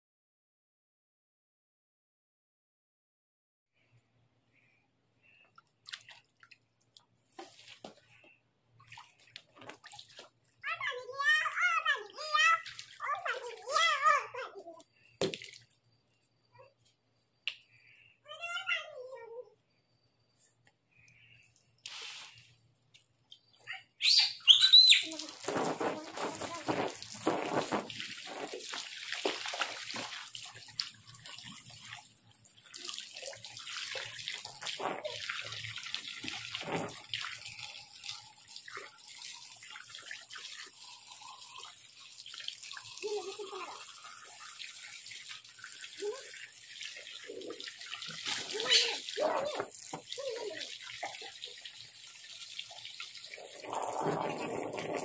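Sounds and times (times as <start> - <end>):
water splashing in paddling pool: 5.8 - 8.2, 8.8 - 15.8, 24.5 - 55.0
child's voice: 10.6 - 14.9, 18.2 - 19.6, 25.0 - 27.0, 43.0 - 43.9, 46.0 - 46.4, 48.4 - 50.7.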